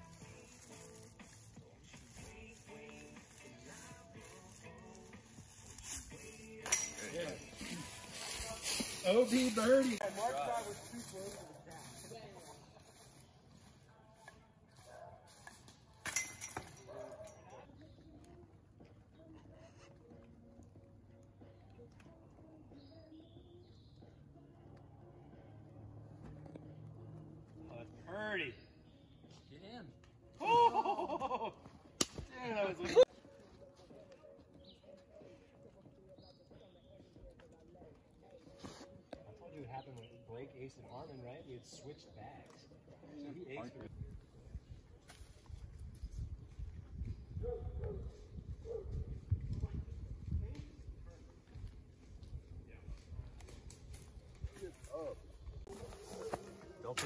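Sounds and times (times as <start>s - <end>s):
voices: 0.0s - 31.6s
disc hitting basket chains: 6.5s - 7.8s, 16.0s - 17.5s.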